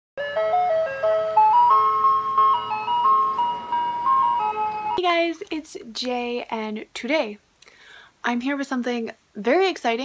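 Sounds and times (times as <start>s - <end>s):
bright intro melody: 0.2s - 5.0s.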